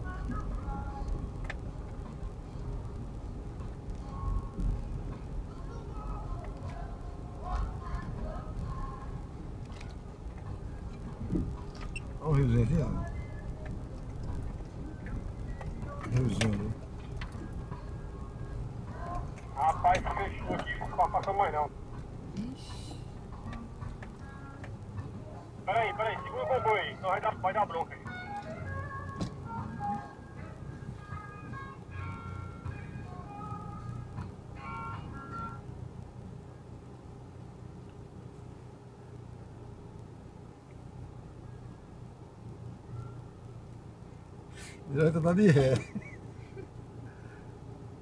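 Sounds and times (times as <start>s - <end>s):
vehicle engine running: 0.0s - 48.0s.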